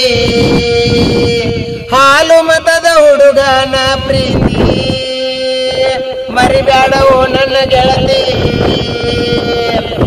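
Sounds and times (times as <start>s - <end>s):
man singing folk song: 0.0s - 10.0s
wind rumbling on microphone: 0.0s - 10.0s.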